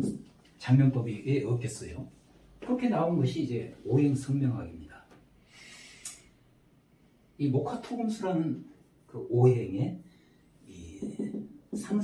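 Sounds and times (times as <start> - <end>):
man breathing in: 5.4 - 6.2.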